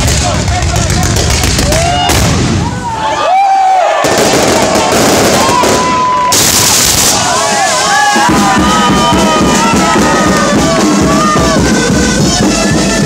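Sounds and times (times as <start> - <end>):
firecrackers crackling: 0.0 - 2.8, 4.0 - 12.7
whistling fireworks: 4.0 - 13.0.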